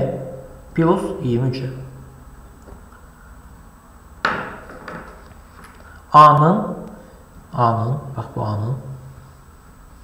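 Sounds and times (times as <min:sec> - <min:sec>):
sharp knock: 0:04.2 - 0:05.2.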